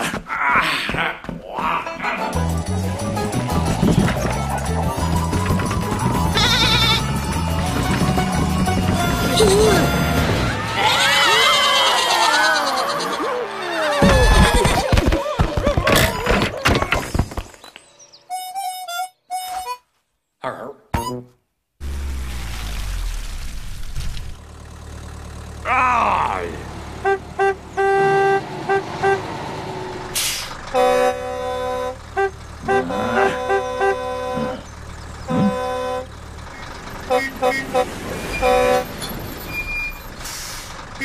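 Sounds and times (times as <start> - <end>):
vehicle engine rumbling: 1.0 - 17.5, 21.8 - 41.0
background music: 2.0 - 10.5
cartoon sheep bleating: 6.3 - 7.1.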